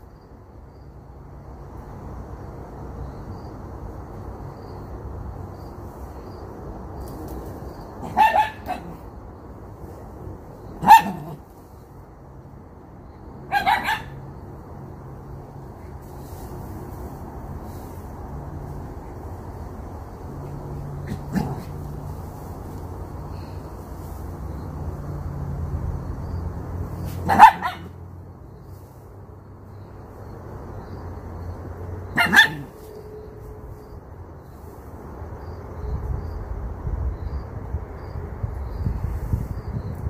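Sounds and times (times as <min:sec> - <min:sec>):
dog barking: 0:08.0 - 0:09.0, 0:10.8 - 0:11.4, 0:13.5 - 0:14.2, 0:21.1 - 0:21.7, 0:27.1 - 0:28.0, 0:32.1 - 0:32.8
dog yelping: 0:08.0 - 0:09.0, 0:10.8 - 0:11.4, 0:13.5 - 0:14.2, 0:27.2 - 0:28.0, 0:32.2 - 0:32.8.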